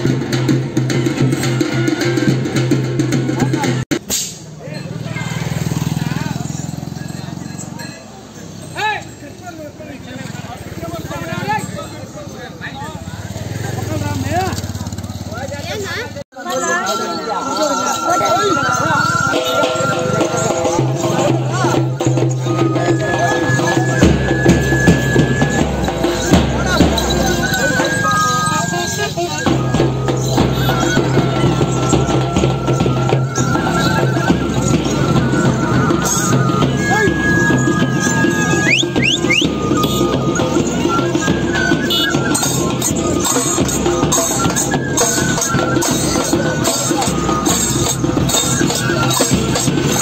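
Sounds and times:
bamboo flute folk melody: 0.0s - 4.3s, 16.4s - 50.0s
drum beats: 0.0s - 50.0s
motorcycle engine passing: 4.9s - 7.8s, 13.0s - 16.2s.

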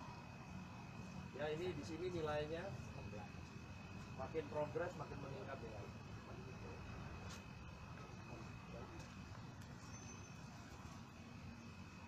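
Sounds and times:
thin high whine: 0.0s - 12.0s.

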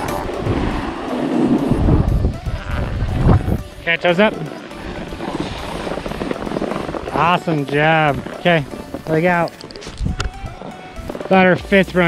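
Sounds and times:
wind rumbling on microphone: 0.0s - 11.3s
snowboards sliding on snow: 0.0s - 12.0s.

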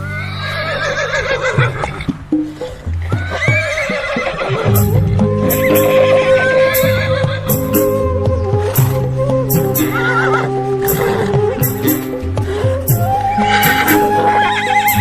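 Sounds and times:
horse whinnying: 0.0s - 2.1s, 3.1s - 15.0s
music with steady bass: 4.7s - 15.0s.

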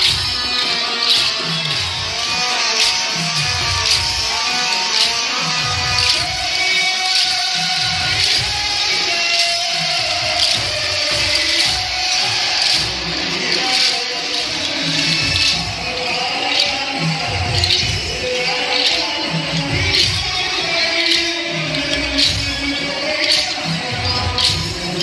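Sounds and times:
devotional song singing: 0.0s - 25.0s
sharp percussion beat: 0.0s - 25.0s.

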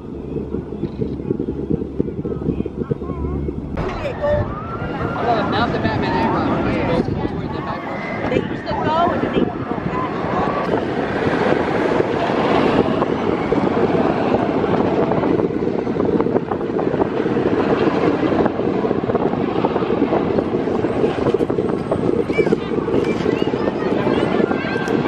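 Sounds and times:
roller coaster train on steel track: 0.0s - 25.0s.

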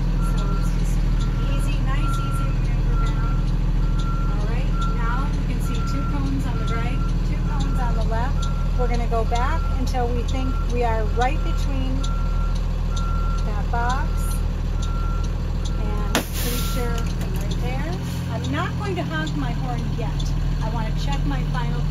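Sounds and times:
backup alarm beeping: 0.0s - 21.9s
bus engine running: 0.0s - 21.9s.

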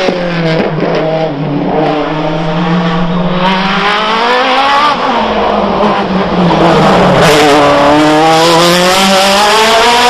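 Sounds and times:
race car accelerating: 0.0s - 10.0s.

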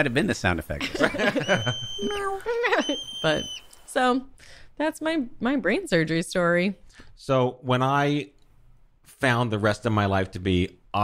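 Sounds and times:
people talking: 0.0s - 6.8s
people laughing: 0.8s - 3.5s
marmot whistle: 1.2s - 3.8s.

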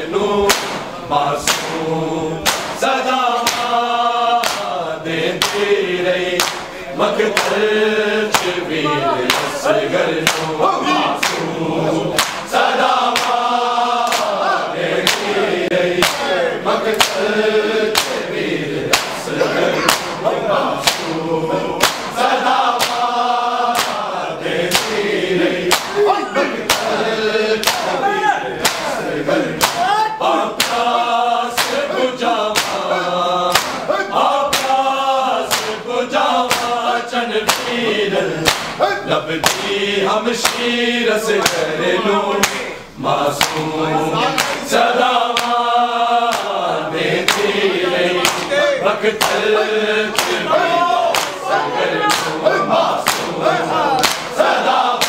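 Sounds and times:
men chanting a lament in chorus: 0.0s - 55.0s
hand slaps on bare chests: 0.5s - 1.8s, 2.4s - 3.8s, 4.4s - 4.8s, 5.4s - 5.7s, 6.4s - 6.7s, 7.3s - 7.6s, 8.3s - 8.6s, 9.3s - 9.6s, 10.2s - 10.6s, 11.2s - 11.5s, 12.2s - 12.5s, 13.1s - 13.4s, 14.0s - 14.4s, 15.0s - 15.4s, 16.0s - 16.3s, 16.9s - 17.3s, 17.9s - 18.3s, 18.9s - 20.2s, 20.8s - 21.2s, 21.8s - 23.1s, 23.7s - 24.1s, 24.7s - 25.0s, 25.7s - 26.0s, 26.7s - 27.0s, 27.6s - 27.9s, 28.6s - 29.0s, 29.6s - 30.0s, 30.6s - 31.0s, 31.6s - 31.9s, 32.5s - 32.9s, 33.5s - 33.9s, 34.5s - 34.8s, 35.5s - 35.8s, 36.5s - 36.8s, 37.5s - 37.8s, 38.4s - 38.8s, 39.4s - 39.7s, 40.4s - 40.7s, 41.4s - 41.7s, 42.4s - 42.7s, 43.4s - 43.7s, 44.4s - 44.7s, 45.4s - 45.6s, 46.3s - 46.5s, 47.2s - 47.6s, 48.2s - 48.5s, 49.2s - 49.5s, 50.1s - 50.5s, 51.1s - 51.4s, 52.1s - 52.4s, 53.0s - 53.4s, 54.0s - 54.4s.

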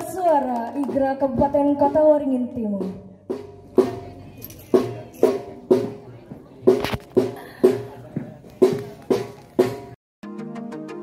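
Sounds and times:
marching drums striking: 0.8s - 10.0s.

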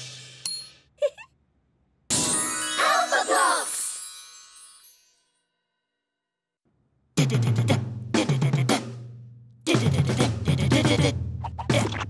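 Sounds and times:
metallic ding: 0.4s - 0.8s
music: 2.1s - 5.8s, 7.2s - 12.0s.

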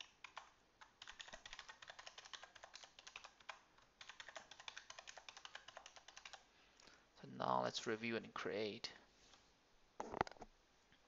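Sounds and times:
computer keyboard typing: 0.0s - 6.4s.

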